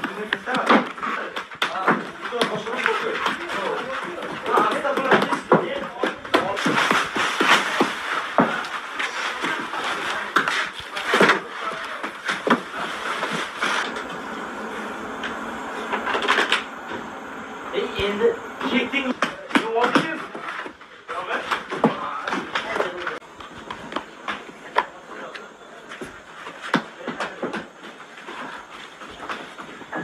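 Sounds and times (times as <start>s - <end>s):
background voices: 9.4s - 20.0s.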